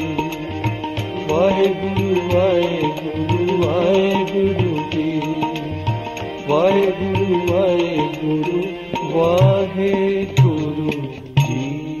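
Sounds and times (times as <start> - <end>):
harmonium chords: 0.0 - 12.0.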